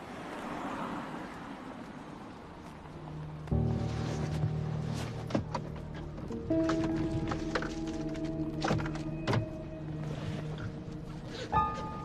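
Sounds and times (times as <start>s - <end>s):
background music with held notes: 2.9s - 12.0s
knocks and clicks in compartment: 5.0s - 9.7s.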